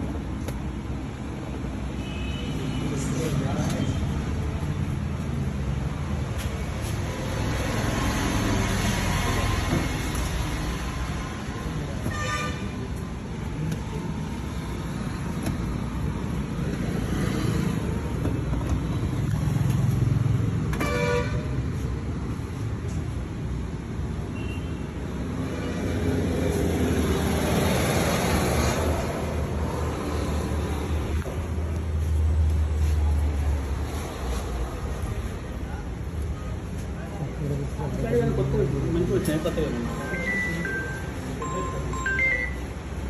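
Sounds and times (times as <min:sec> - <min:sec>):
road traffic rumble: 0:00.0 - 0:43.0.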